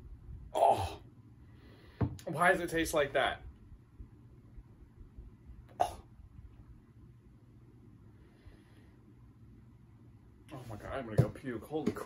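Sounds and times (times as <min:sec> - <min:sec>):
man gagging: 0:00.6 - 0:01.0, 0:05.7 - 0:06.0.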